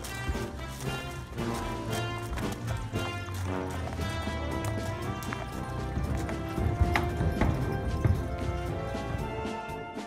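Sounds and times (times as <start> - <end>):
background music: 0.0 - 10.0
horse hooves thudding on ramp: 0.0 - 10.0.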